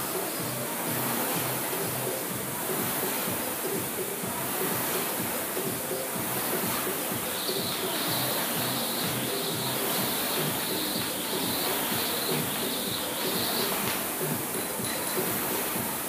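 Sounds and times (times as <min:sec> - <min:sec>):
background music: 0:00.0 - 0:16.0
jump rope swishing: 0:00.0 - 0:16.0.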